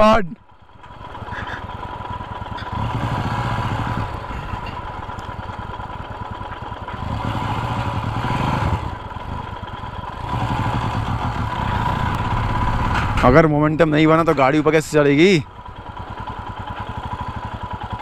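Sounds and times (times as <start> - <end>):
motorcycle engine revving: 0.0 - 18.0.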